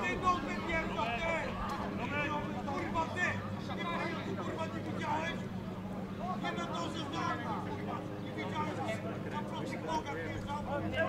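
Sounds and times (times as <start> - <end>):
distant voices calling out: 0.0 - 11.0.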